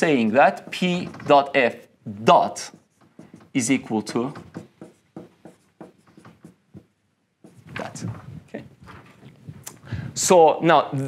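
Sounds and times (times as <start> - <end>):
marker writing on whiteboard: 0.0 - 8.2.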